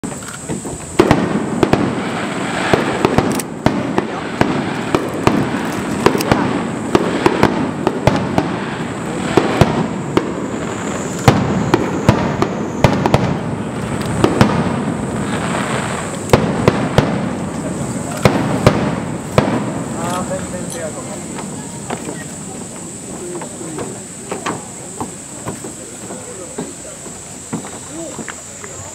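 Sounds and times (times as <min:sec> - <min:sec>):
firework shells bursting: 0:00.0 - 0:28.9
rumble and crackle: 0:02.7 - 0:24.0.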